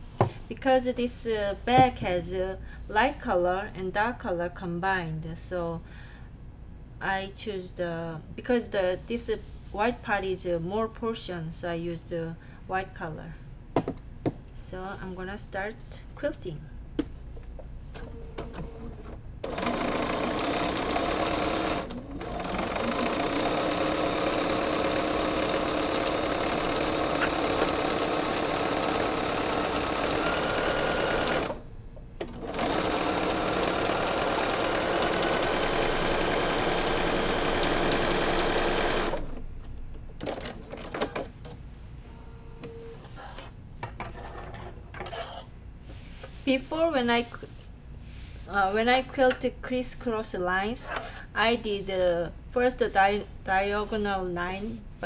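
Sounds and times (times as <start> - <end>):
sewing machine stitching: 19.4 - 31.6, 32.2 - 39.3.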